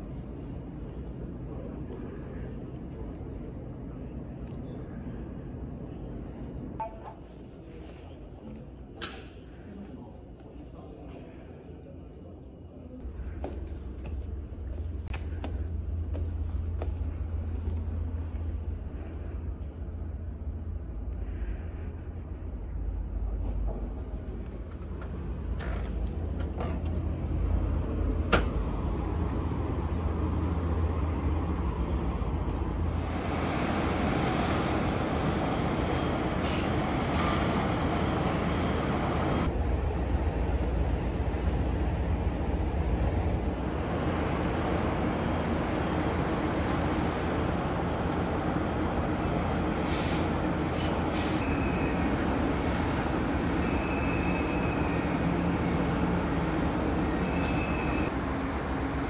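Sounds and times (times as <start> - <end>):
outdoor background rumble and hiss: 0.0 - 59.0.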